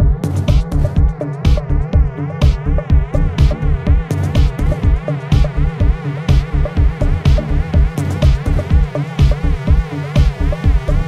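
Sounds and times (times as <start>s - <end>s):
clap or hi-hat hit: 0.0s - 1.7s, 3.3s - 11.0s
buzzing wobbling synth: 0.0s - 11.0s
electronic dance music: 0.0s - 11.0s
pounding kick drum: 0.0s - 11.0s.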